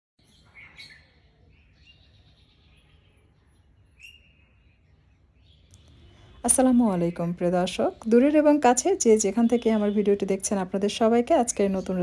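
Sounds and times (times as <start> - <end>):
faint bird chirps: 0.2 - 8.2.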